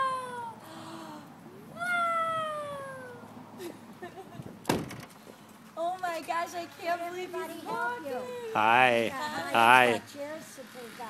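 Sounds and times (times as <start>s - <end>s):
high voice crying out: 0.0s - 0.6s, 1.6s - 3.4s.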